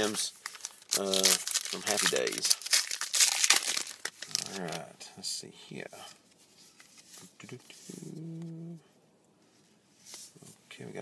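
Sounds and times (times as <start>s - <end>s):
trading cards rustling: 0.0s - 4.9s
man humming low note: 7.9s - 8.9s.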